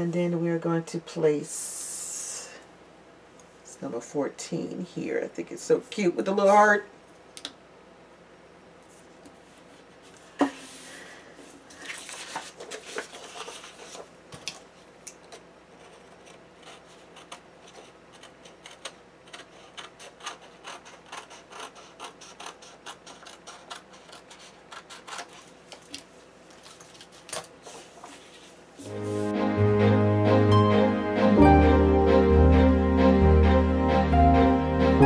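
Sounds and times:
paper pages rustling: 11.7s - 14.6s, 23.1s - 29.2s.

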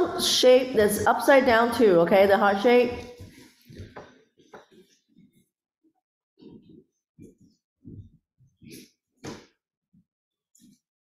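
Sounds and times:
woman speaking: 0.0s - 3.1s.

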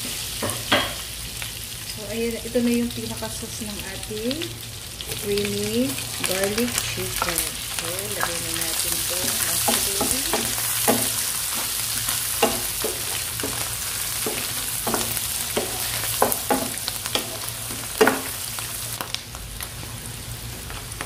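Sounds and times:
mushrooms sizzling in a frying pan: 0.0s - 21.0s
wooden spoon scraping a pan: 9.2s - 18.3s.

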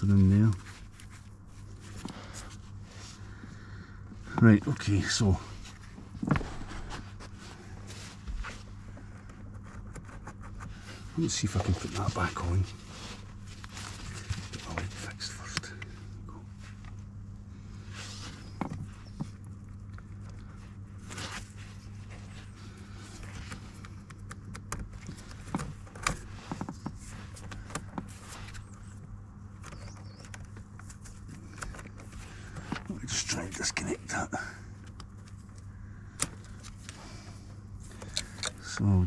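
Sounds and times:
cables rustling: 0.0s - 33.6s
steady low hum: 0.0s - 39.0s.

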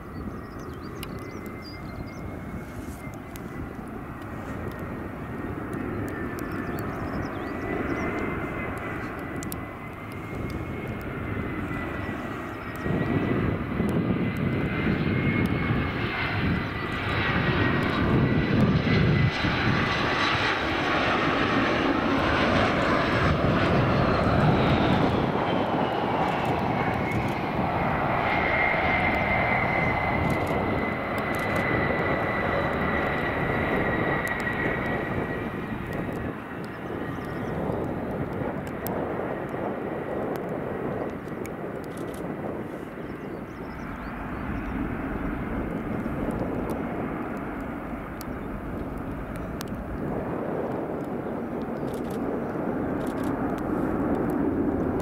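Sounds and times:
jet engines whining: 0.0s - 55.0s.

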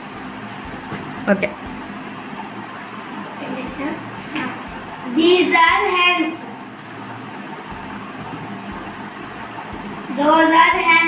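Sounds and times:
continuous hiss: 0.0s - 11.0s.

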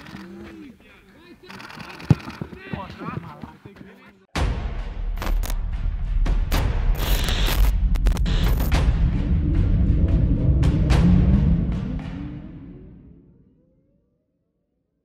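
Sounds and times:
players calling out: 0.0s - 4.2s
ball kick: 2.0s - 3.8s
glitchy noise bursts: 6.9s - 8.7s.

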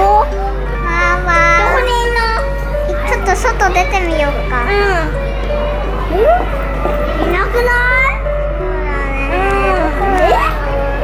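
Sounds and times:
background music melody: 0.0s - 11.0s
child's voice: 0.9s - 5.2s.

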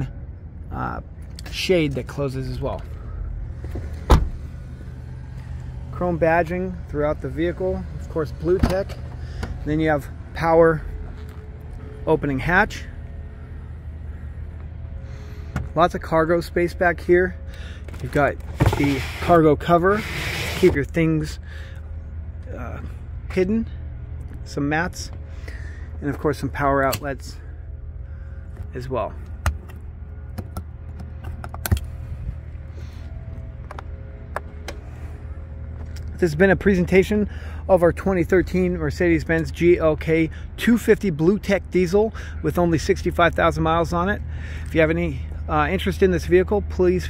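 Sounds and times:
low steady hum: 0.0s - 47.0s.

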